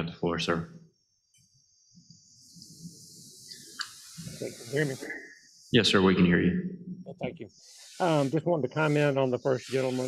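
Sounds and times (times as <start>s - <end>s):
steady high hiss: 0.3s - 6.1s, 7.2s - 10.0s.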